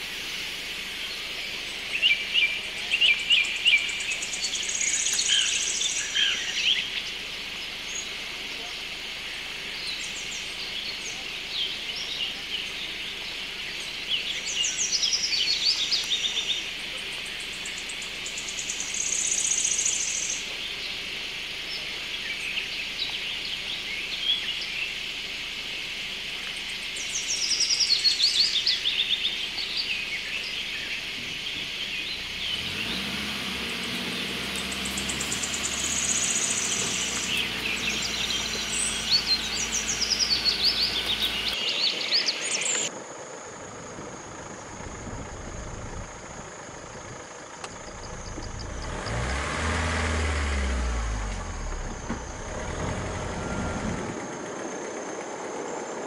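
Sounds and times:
wild birds singing and calling: 0:00.0 - 0:56.0
low rumble: 0:43.8 - 0:49.3.

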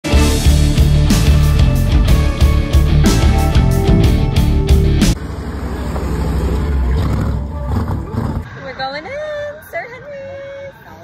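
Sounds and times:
rock music with heavy beat: 0:00.0 - 0:05.2
truck engine rumbling: 0:00.0 - 0:08.6.

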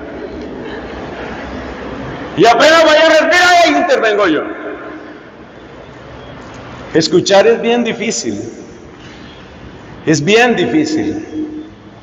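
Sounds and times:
steady rumbling hiss: 0:00.0 - 0:12.0.

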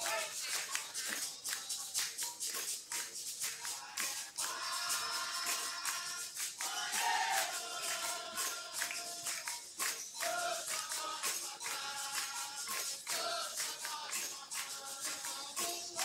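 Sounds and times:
voices singing: 0:00.0 - 0:02.4, 0:03.5 - 0:16.0
berimbau: 0:00.0 - 0:16.0
rattling shaker: 0:00.0 - 0:16.0
tambourine: 0:00.0 - 0:16.0.

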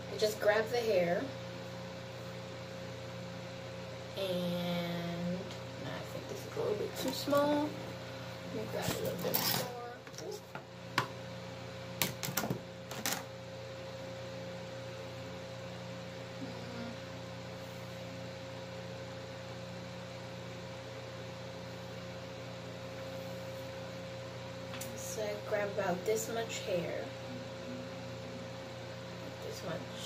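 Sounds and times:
faint appliance whine: 0:00.0 - 0:30.0
low room hum: 0:00.0 - 0:30.0.

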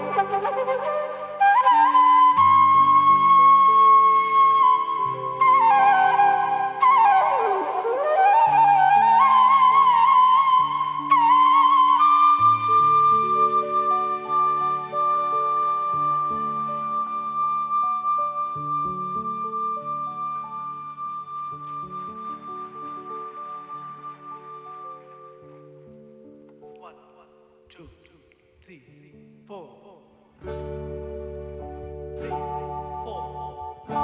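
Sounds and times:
bamboo flute melody: 0:00.0 - 0:27.6, 0:30.4 - 0:34.0.

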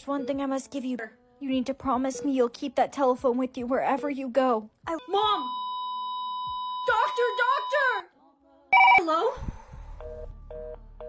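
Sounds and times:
electronic beep tone: 0:05.4 - 0:08.0, 0:08.8 - 0:09.0
telephone ring: 0:08.8 - 0:09.0
telephone busy signal: 0:08.8 - 0:09.1.

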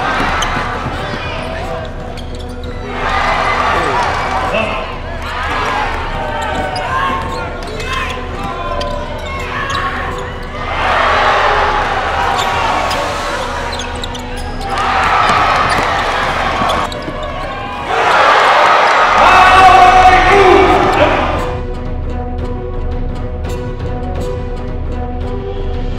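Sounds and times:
noisy crowd: 0:00.0 - 0:21.6
voices of players and spectators: 0:00.0 - 0:21.6.

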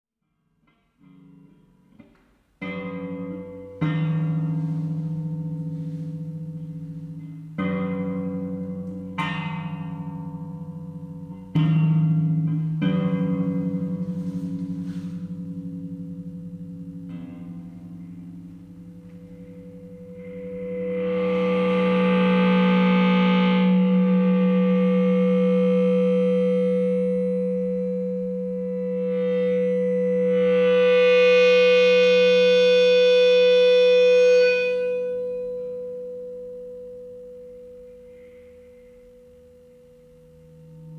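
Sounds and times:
sustained gong-like guitar tones: 0:00.7 - 0:40.9.

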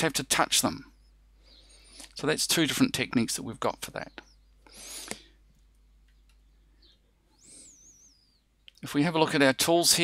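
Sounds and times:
high bird chirp: 0:05.6 - 0:08.8.

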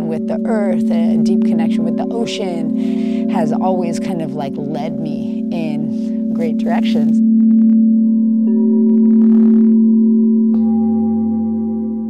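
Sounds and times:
singing bowls ringing: 0:00.0 - 0:12.0.

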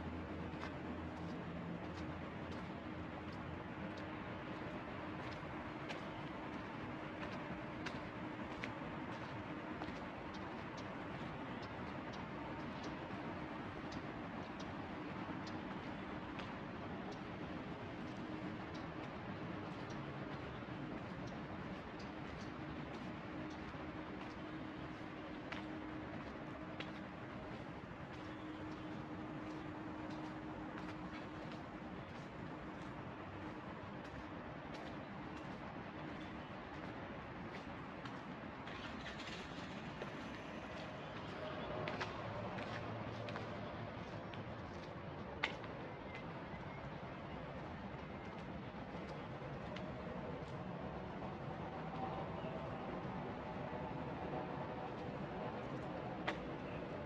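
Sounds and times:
distant traffic hum: 0:00.0 - 0:57.0.

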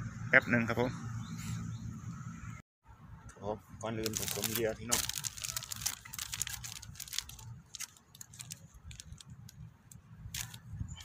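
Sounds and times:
plastic packet crinkling: 0:04.0 - 0:09.7, 0:10.3 - 0:10.7.

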